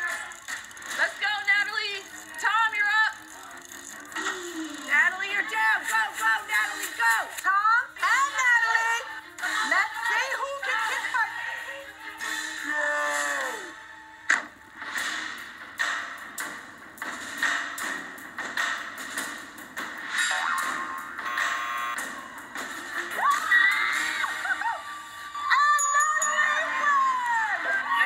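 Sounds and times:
background music: 0.0 - 28.0
voices shouting and cheering: 23.1 - 28.0.

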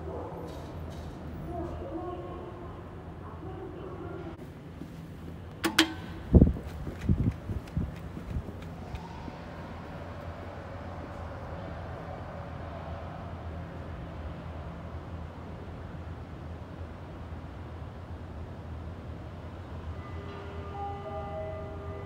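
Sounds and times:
elevator humming: 5.2 - 11.8.

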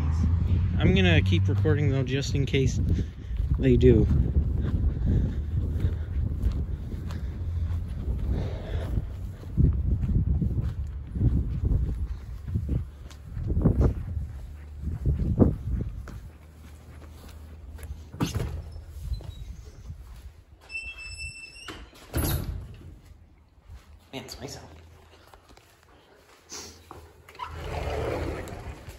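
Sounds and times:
wind rumbling on microphone: 0.0 - 21.4, 27.4 - 28.9
footsteps on grass and concrete: 1.0 - 20.7, 22.9 - 27.3
door squeaking: 20.6 - 22.8, 27.3 - 27.9.

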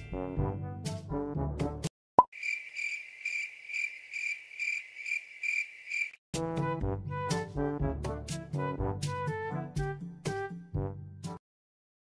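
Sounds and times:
background music: 0.0 - 1.9, 6.4 - 11.4
cricket chirp sound effect: 2.2 - 6.2.

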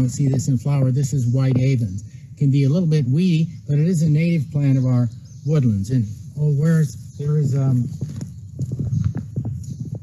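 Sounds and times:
footsteps on gravel: 7.4 - 10.0.

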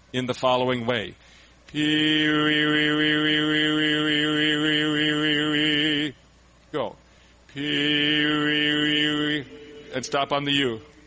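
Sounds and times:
man alternating vowel sounds: 1.7 - 6.2, 7.5 - 11.0.

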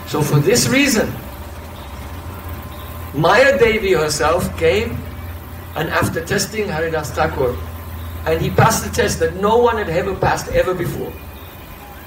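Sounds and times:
faint steady high tone: 0.0 - 12.0
steady low hum: 0.0 - 12.0.

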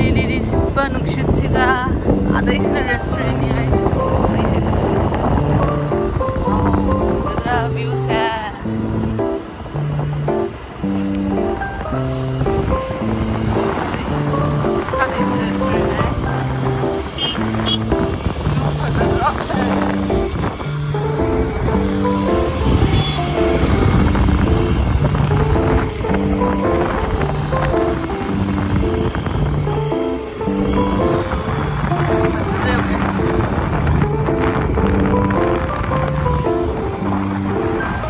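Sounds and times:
background music: 0.0 - 38.0
road noise: 0.0 - 38.0
wind rumble: 0.0 - 38.0.

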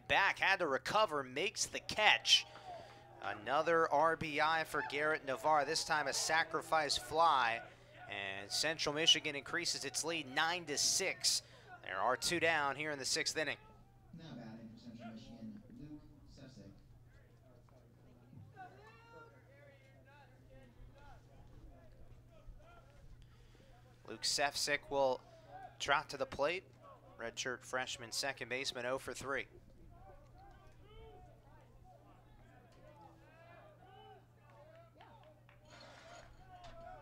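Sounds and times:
low steady hum: 12.3 - 34.4
steady low hum: 12.9 - 18.6.

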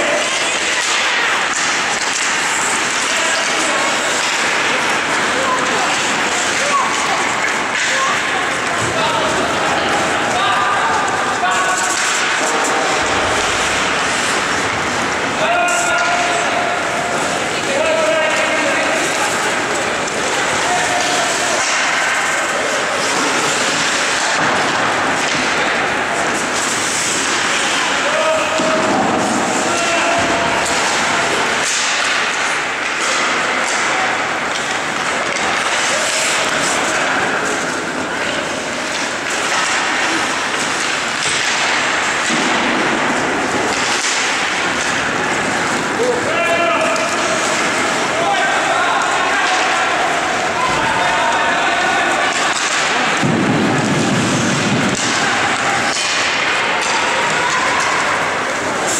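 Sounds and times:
skates scraping ice: 0.0 - 58.9
sticks and puck clacking: 0.0 - 58.9.

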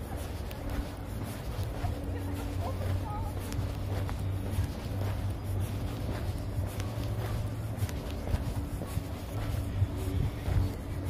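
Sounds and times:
footsteps on asphalt: 0.0 - 11.0
steady low hum: 0.0 - 11.0.

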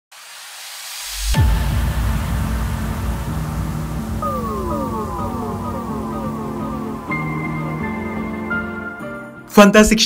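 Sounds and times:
hiss of noise: 0.1 - 8.8
deep synthesized rumble: 1.3 - 8.9.

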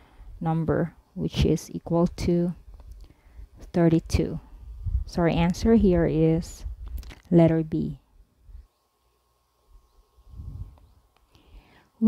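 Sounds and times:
faint breath on microphone: 10.3 - 12.0.

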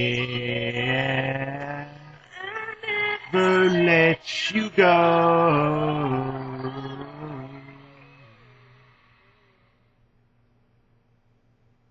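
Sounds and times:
man singing a held note: 3.0 - 8.6.

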